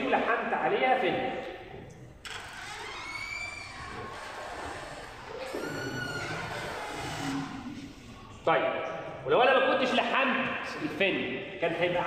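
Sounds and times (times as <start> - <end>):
marker squeaking on whiteboard: 2.2 - 8.0.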